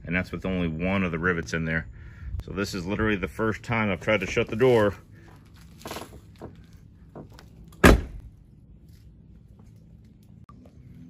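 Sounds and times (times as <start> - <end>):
car door slamming: 7.8 - 8.3.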